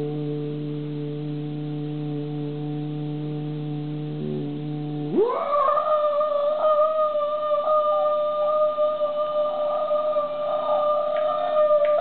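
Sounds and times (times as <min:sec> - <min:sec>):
man singing a long high note: 0:04.2 - 0:12.0.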